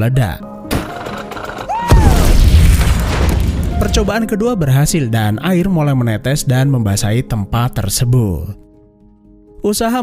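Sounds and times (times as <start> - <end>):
explosion boom: 1.9 - 4.2.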